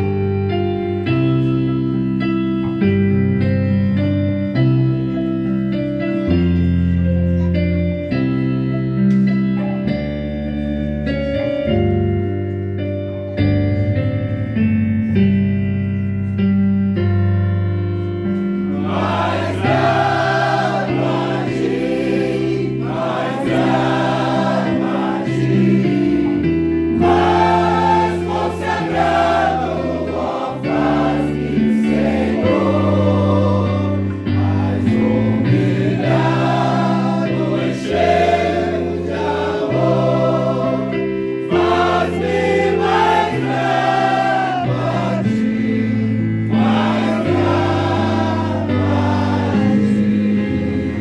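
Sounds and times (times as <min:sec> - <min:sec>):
electronic keyboard: 0:00.0 - 0:51.0
group singing a hymn: 0:18.5 - 0:51.0.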